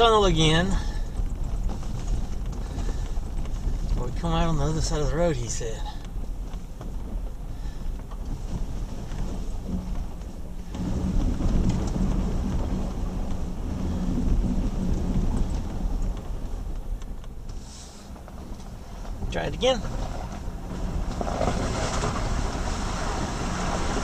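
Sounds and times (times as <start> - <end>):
engine and tyres rumbling: 0.0 - 24.0.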